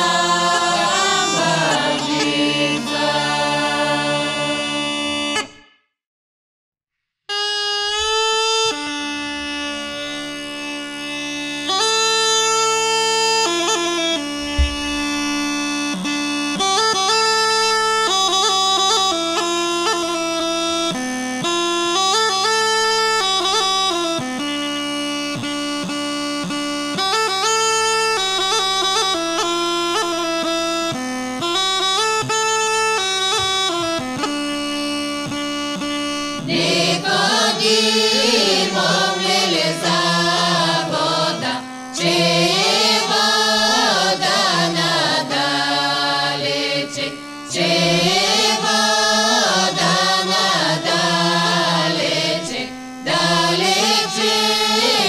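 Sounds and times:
group of voices singing: 0:00.0 - 0:05.2, 0:36.4 - 0:55.0
bagpipe melody over drone: 0:00.0 - 0:05.7, 0:07.3 - 0:55.0.

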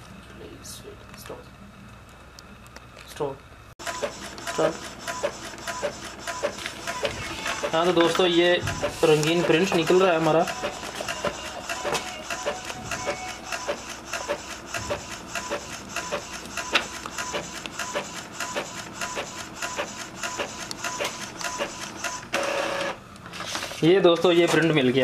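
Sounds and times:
paper feeding out whirr: 0:03.8 - 0:24.8
printer carriage clicking: 0:06.9 - 0:15.5.

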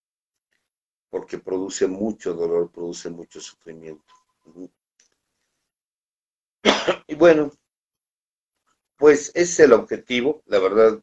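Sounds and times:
man coughing: 0:06.6 - 0:07.1.

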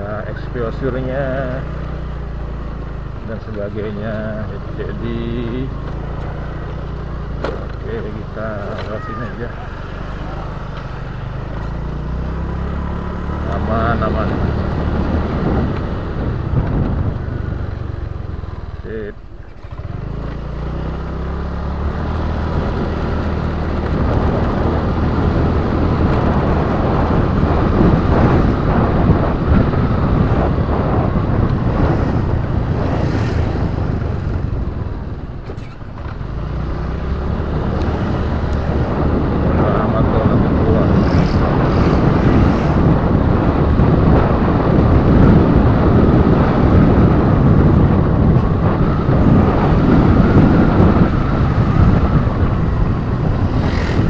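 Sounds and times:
low engine hum: 0:00.0 - 0:54.0
wind rushing over microphone: 0:00.0 - 0:54.0.

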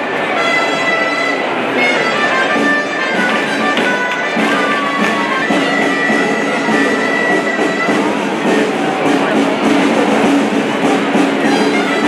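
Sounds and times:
crowd noise: 0:00.0 - 0:12.0
shawms playing a tune: 0:00.0 - 0:12.0.

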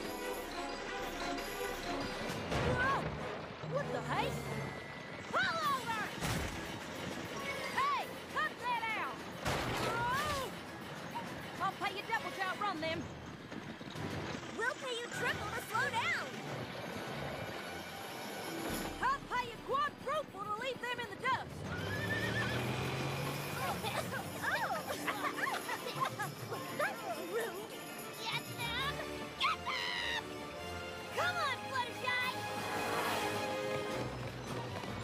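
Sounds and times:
cartoon chase music: 0:00.0 - 0:35.0
hoofbeats: 0:00.0 - 0:35.0
wagon wheels rumbling: 0:00.0 - 0:35.0
horse whinny: 0:21.6 - 0:23.4.

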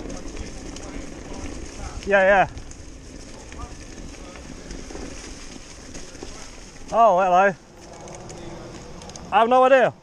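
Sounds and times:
faint ticks and rattles: 0:00.0 - 0:09.4
bike tyres on dirt trail: 0:00.0 - 0:10.0.

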